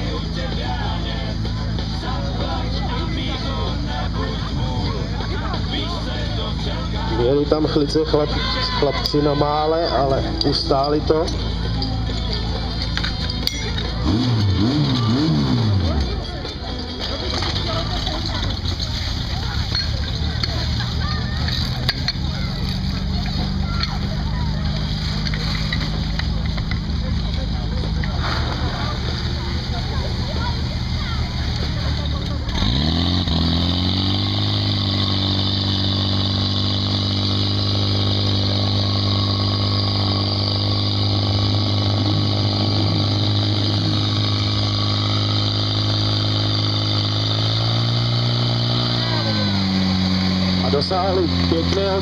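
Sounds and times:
petrol pump engine running: 0.0 - 52.0.

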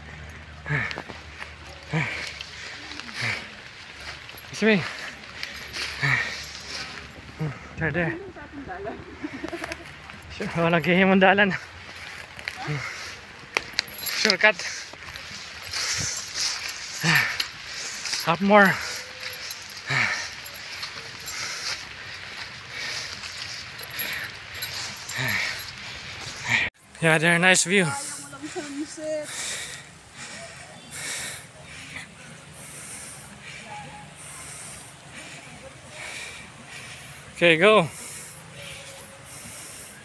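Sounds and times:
person breathing hard: 0.0 - 7.8, 11.6 - 26.7, 28.0 - 40.0
people walking through tall grass: 0.0 - 40.0.

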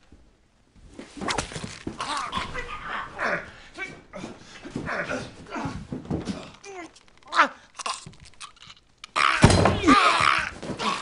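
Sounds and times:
bone-crunching crack: 6.5 - 9.5
falling cry: 9.1 - 11.0.

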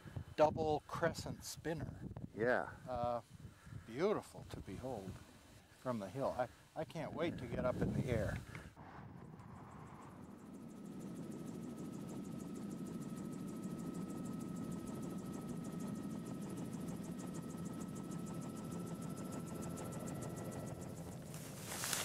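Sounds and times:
aircraft engine drone: 6.1 - 22.0.

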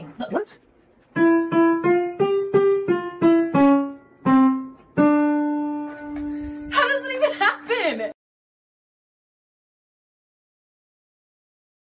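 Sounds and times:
digital piano melody: 1.1 - 7.7.

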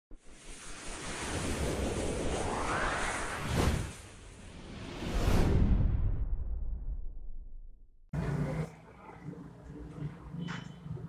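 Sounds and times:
rushing whoosh: 0.3 - 6.9.

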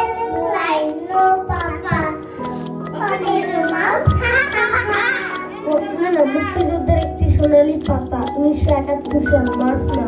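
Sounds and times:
backing music with ticking beat: 0.0 - 10.0
child speaking into a microphone: 0.0 - 10.0.

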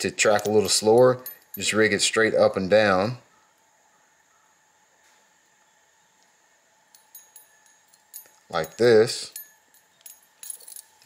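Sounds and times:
metallic clinks and jingles: 0.2 - 1.8, 6.9 - 11.0.

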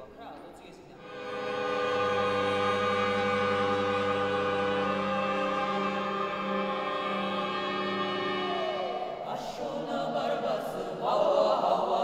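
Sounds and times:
slow ensemble held tones: 1.0 - 10.2.

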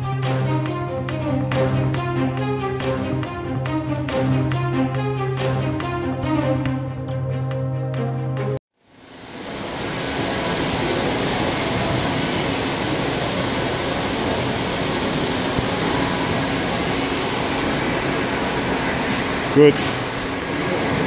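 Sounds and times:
ventilation rushing noise: 8.9 - 21.0.

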